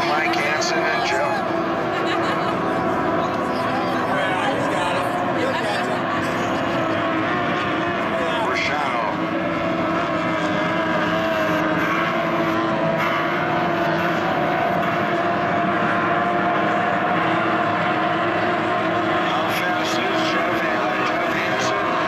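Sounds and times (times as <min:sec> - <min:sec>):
racing boat engines whining: 0:00.0 - 0:22.0.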